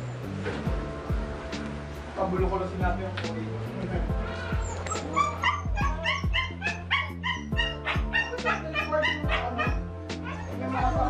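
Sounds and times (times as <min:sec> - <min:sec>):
background music with beat: 0:00.0 - 0:11.0
small dog yipping: 0:04.4 - 0:11.0.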